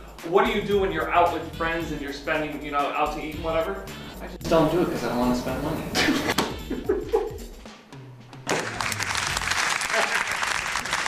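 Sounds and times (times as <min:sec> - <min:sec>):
audience applause: 0:08.5 - 0:11.0.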